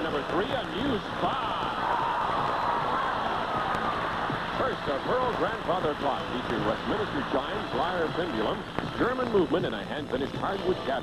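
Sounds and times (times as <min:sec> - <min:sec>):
audience applauding and cheering: 0:00.0 - 0:08.9.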